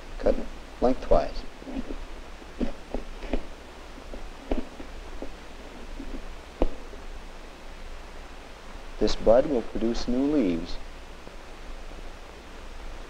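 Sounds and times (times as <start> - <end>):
film soundtrack hum and hiss: 0.0 - 13.0.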